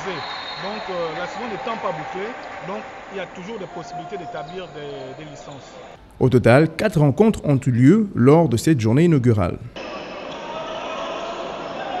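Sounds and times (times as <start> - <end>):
echoing din of voices: 0.0 - 7.0, 8.3 - 12.0.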